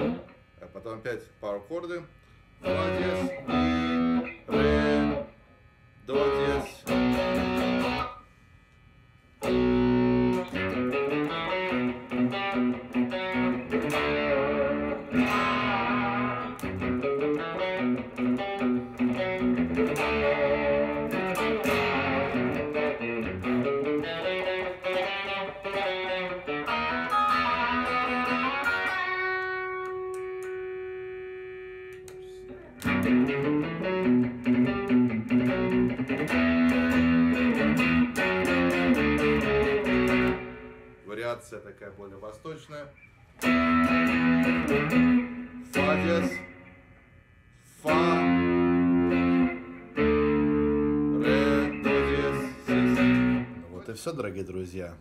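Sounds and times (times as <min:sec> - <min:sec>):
electric guitar power chords: 0:00.0 - 0:00.6, 0:02.6 - 0:05.4, 0:06.1 - 0:08.2, 0:09.4 - 0:41.0, 0:43.4 - 0:53.7.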